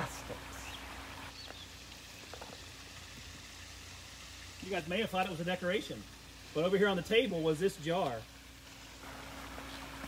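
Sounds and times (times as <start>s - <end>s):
stream water running: 0.0s - 10.0s.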